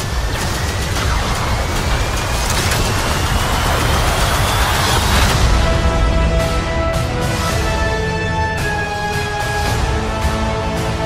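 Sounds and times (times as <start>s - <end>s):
loud rushing roar: 0.0s - 7.9s
deep rumble: 0.0s - 8.6s.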